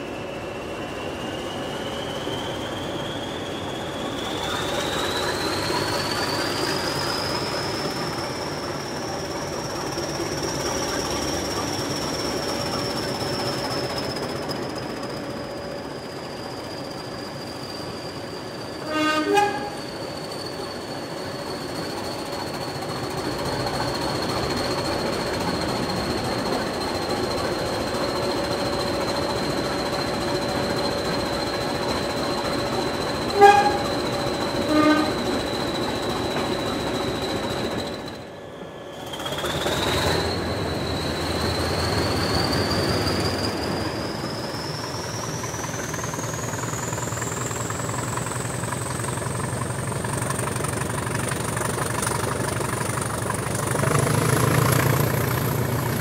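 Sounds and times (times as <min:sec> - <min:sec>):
turbocharger whistle: 0:00.0 - 0:15.2, 0:16.0 - 0:56.0
diesel locomotive engine running: 0:00.0 - 0:56.0
short horn blasts: 0:18.8 - 0:19.8, 0:33.3 - 0:34.0, 0:34.7 - 0:35.2.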